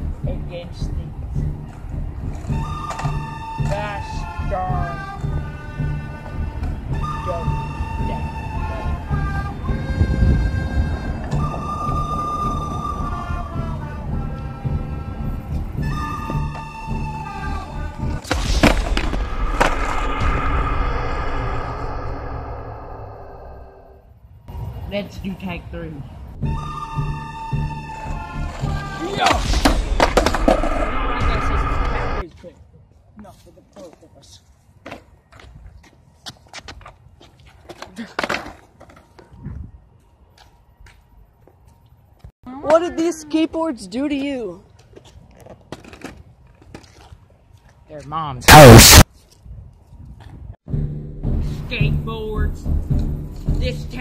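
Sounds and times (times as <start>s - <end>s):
background music: 0.0s - 19.2s, 26.4s - 30.6s
low handling rumble: 18.6s - 24.0s
skateboard clacking on concrete: 37.5s - 39.2s
person speaking: 48.5s - 49.0s.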